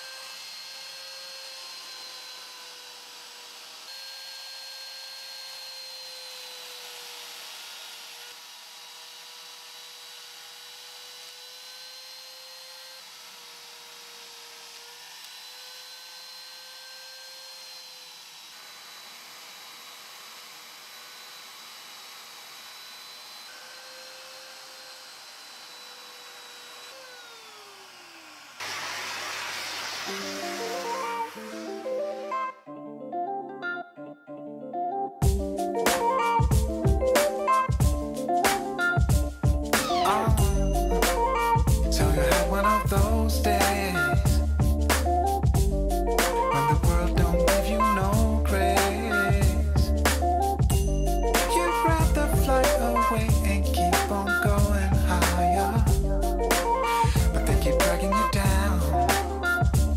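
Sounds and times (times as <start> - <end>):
shop vacuum running: 0.0 - 32.4, 35.8 - 43.1
motor winding down: 0.0 - 32.6, 35.6 - 59.9
router cutting wood: 0.0 - 32.7, 35.2 - 59.9.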